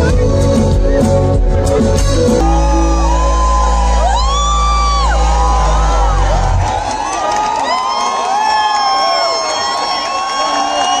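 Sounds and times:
loud concert music with deep bass: 0.0s - 7.8s
crowd whooping and cheering: 2.4s - 11.0s.

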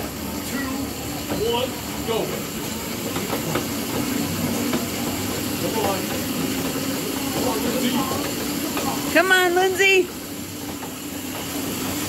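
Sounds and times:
exercise machines whirring: 0.0s - 12.0s.

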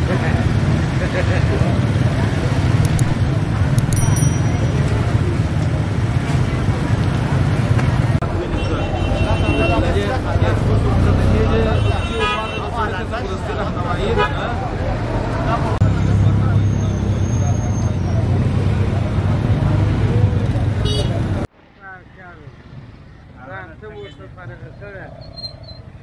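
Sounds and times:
motorcycle engines rumbling: 0.0s - 26.0s.

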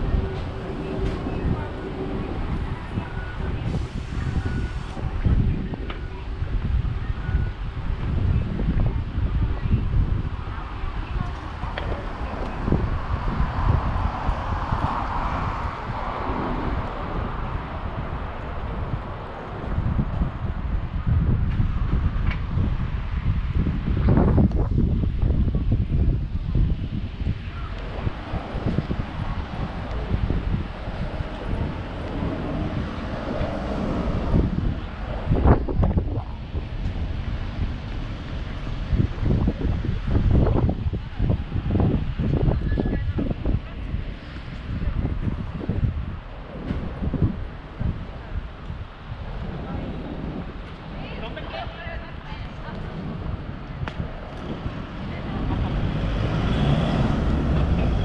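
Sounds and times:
road traffic: 0.0s - 58.0s
wind noise on microphone: 0.0s - 58.0s.

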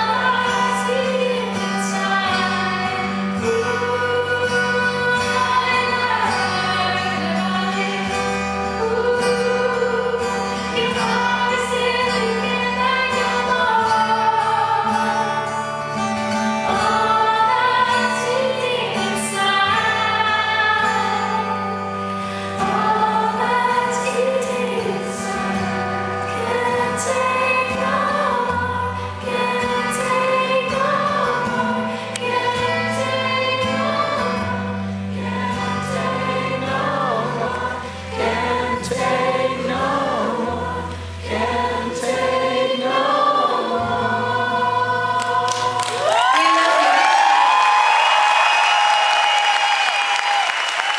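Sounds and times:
woman singing with accompaniment: 0.0s - 47.2s
audience applause: 45.5s - 50.9s
audience cheering and whistling: 45.8s - 50.9s.

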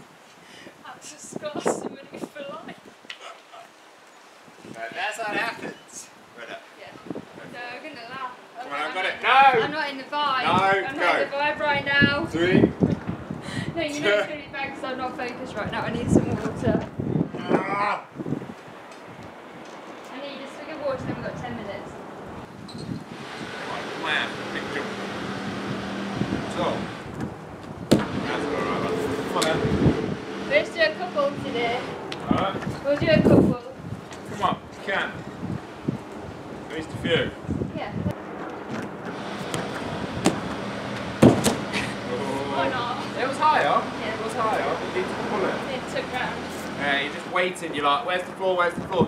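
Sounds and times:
wind noise on microphone: 0.0s - 3.3s, 4.4s - 8.4s, 9.5s - 49.0s
slaps on inflatable air track: 41.2s - 41.7s
thump of landing on crash mat: 41.2s - 41.7s.

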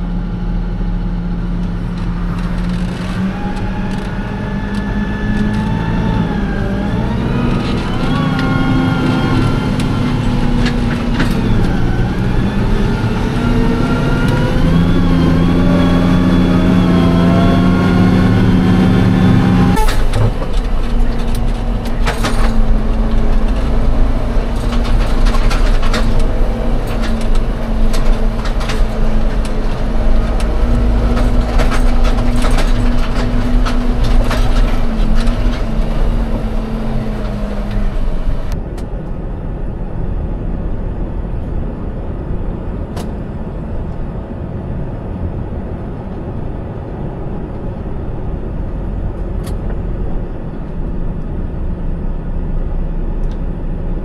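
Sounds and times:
tractor engine running: 0.0s - 54.0s
clicks and rattles in cab: 19.8s - 38.9s.

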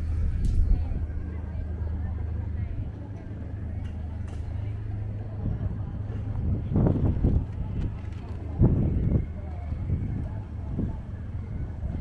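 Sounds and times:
low traffic rumble: 0.0s - 12.0s
passers-by talking indistinctly: 0.0s - 12.0s.

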